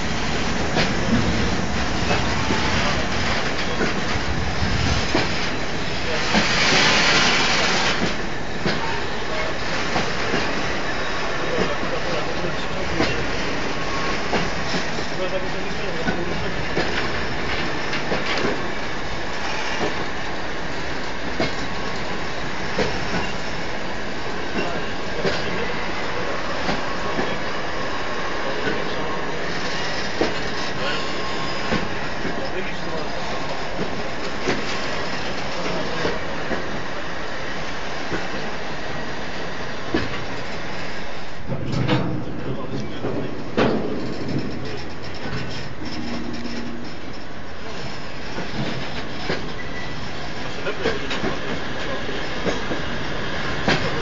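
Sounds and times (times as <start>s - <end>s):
wheels clacking over rail joints: 0.0s - 20.3s, 39.9s - 54.0s
steel wheels rumbling on rail: 0.0s - 54.0s.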